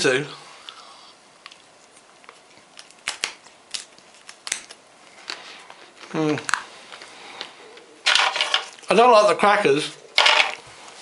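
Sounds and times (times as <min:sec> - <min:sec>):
cracker crunching: 0:01.4 - 0:07.1.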